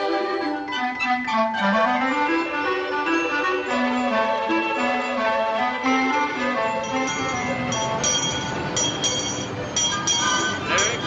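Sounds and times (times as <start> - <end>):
street traffic din: 0.0 - 11.0
handbell ringing: 6.6 - 11.0.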